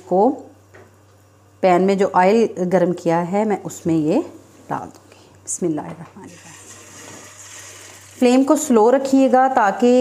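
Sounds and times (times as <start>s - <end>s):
kebab sizzling in hot oil: 6.3s - 8.7s.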